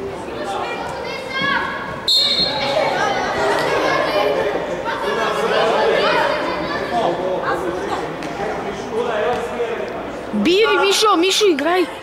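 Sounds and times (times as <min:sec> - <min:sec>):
referee's whistle: 0:02.1 - 0:02.8
people shouting in a hall: 0:10.4 - 0:11.4.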